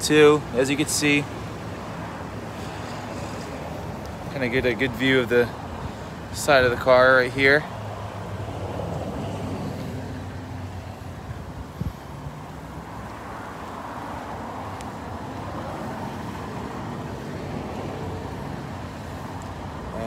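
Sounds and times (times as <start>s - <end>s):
traffic noise: 0.0s - 20.0s
vehicle engine humming: 0.0s - 20.0s.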